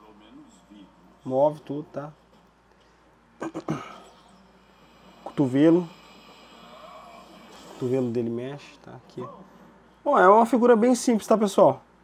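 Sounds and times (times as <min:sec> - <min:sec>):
man coughing: 0:03.4 - 0:04.1.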